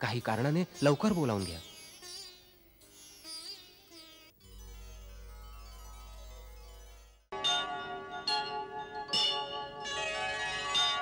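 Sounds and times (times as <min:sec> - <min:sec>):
music: 0:04.4 - 0:11.0
bell-like chime jingle: 0:07.3 - 0:11.0.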